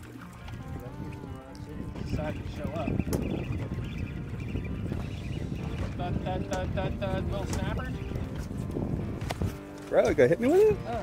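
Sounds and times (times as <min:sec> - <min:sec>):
sea noise: 0:00.0 - 0:11.0
wind: 0:00.0 - 0:11.0.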